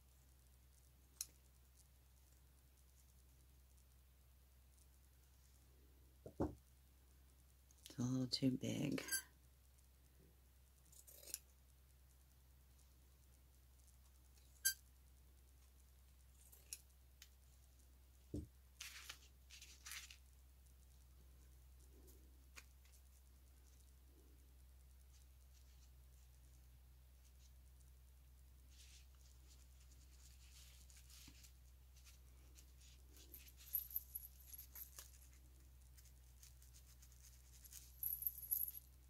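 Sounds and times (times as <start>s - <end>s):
fabric handling: 18.8s - 20.2s, 28.7s - 35.4s.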